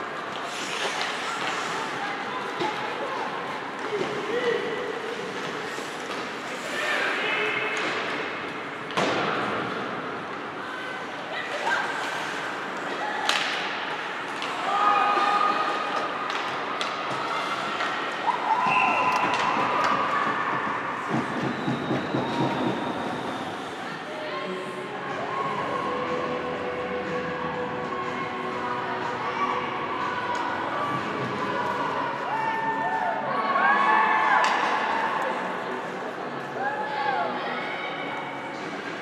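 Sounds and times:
puck and sticks hitting boards: 8.9 - 9.8, 13.2 - 14.6.

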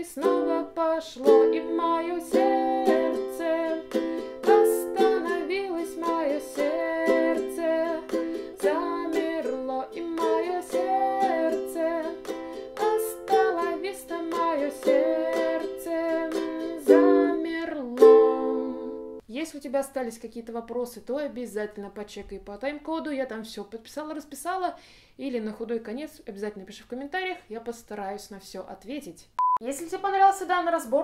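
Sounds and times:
ukulele strumming chords: 0.1 - 19.2.

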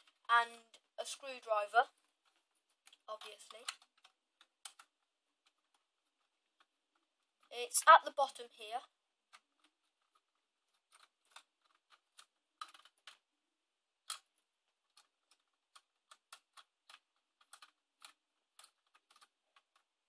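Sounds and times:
small plastic clicks and ticks: 0.0 - 13.4, 14.0 - 20.0.

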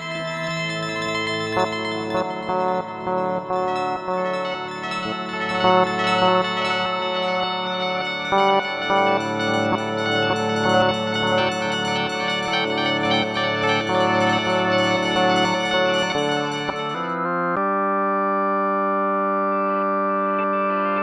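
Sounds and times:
layered guitar delay texture: 0.0 - 17.6
held synthesizer chord: 0.0 - 20.4.

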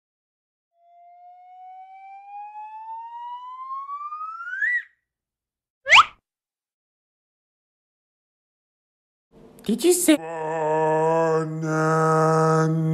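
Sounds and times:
rising whistle-like tone: 0.8 - 5.0
sharp upward zip: 3.2 - 5.0, 5.9 - 6.2.

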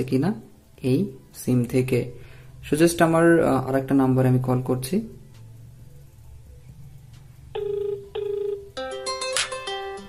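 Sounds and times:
music from phone speaker: 7.5 - 10.0
phone ring-back tone: 7.5 - 10.0.

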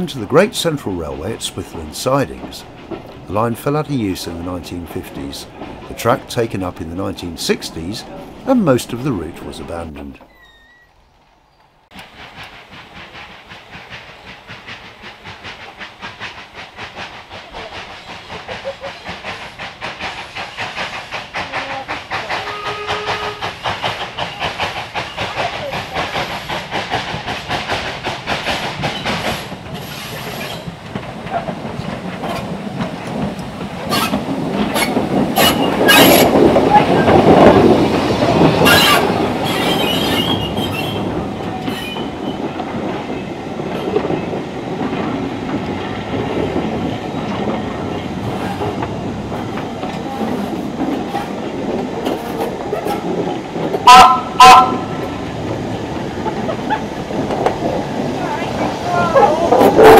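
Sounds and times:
steam locomotive chuffing: 0.0 - 10.2, 11.9 - 59.9
wheels clacking over rail joints: 0.0 - 59.9.

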